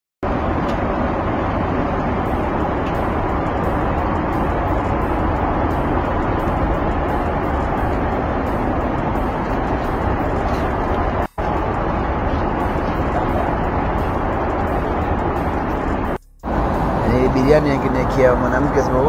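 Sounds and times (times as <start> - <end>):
airliner cabin drone: 0.2 - 19.0.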